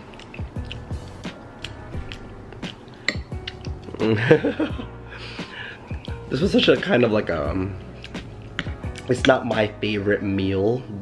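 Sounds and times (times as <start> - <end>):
person chewing food: 0.0 - 4.2, 5.7 - 6.3, 7.8 - 9.1
quiet background music: 0.0 - 11.0.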